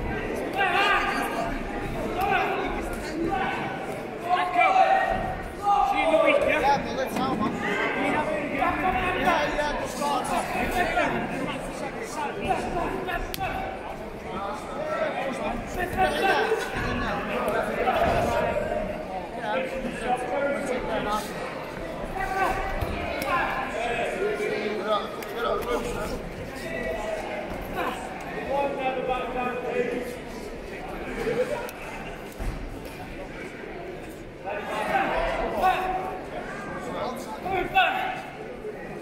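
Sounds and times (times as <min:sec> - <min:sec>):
crowd chatter in echoing hall: 0:00.0 - 0:39.0.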